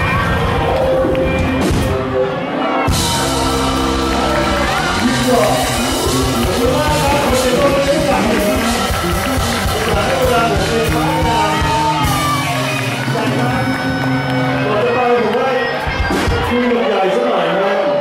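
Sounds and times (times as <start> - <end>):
acoustic and electric guitars: 0.0 - 16.5
bass guitar: 0.0 - 16.5
drums: 0.0 - 17.0.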